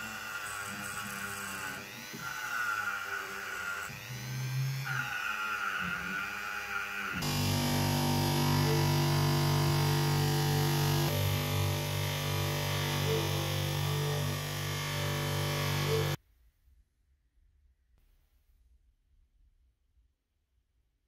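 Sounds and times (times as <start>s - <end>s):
bench polisher motor humming: 0.0s - 16.2s
rotary tool whining on metal: 0.0s - 16.2s.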